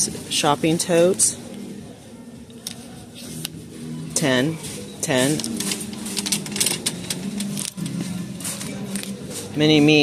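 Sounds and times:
shopping cart rattling: 3.7 - 10.0.

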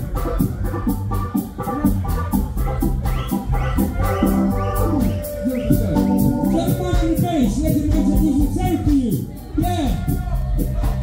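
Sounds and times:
ska band playing: 0.0 - 11.0.

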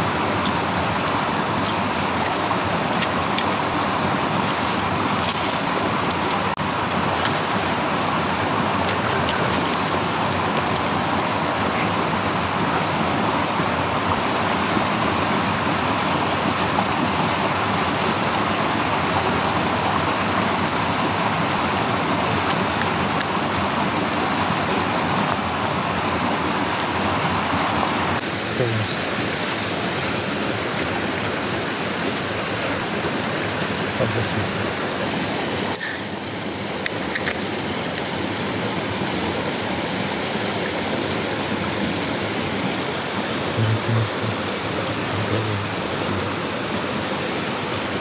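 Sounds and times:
mountain stream rushing: 0.0 - 48.0.

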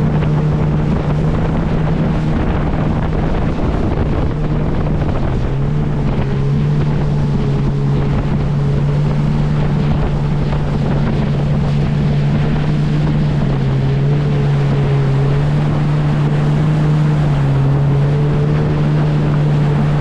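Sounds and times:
personal watercraft engine droning: 0.0 - 20.0
wind buffeting microphone: 0.0 - 20.0.

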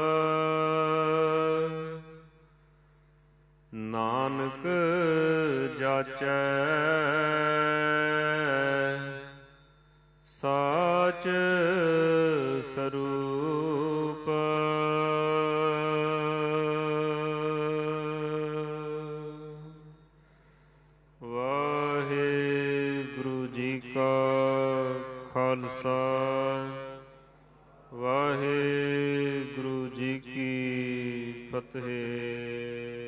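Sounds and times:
chanting in long held notes: 0.0 - 2.4, 3.7 - 9.7, 10.3 - 33.0.

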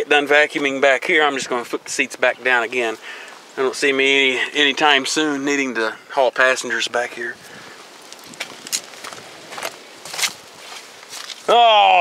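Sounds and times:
footsteps on gravel: 7.4 - 11.6.

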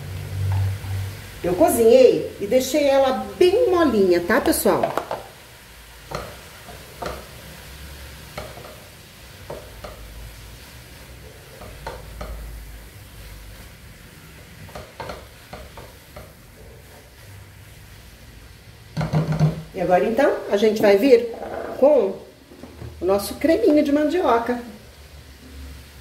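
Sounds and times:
food sizzling faintly in a pot: 0.0 - 26.0
spatula scraping and tapping a pot: 6.1 - 7.3, 8.3 - 10.1, 11.2 - 12.5, 14.5 - 17.1.

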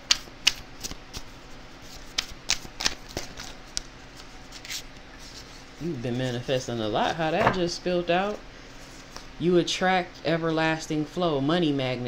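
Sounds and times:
cards being shuffled: 0.1 - 5.6.

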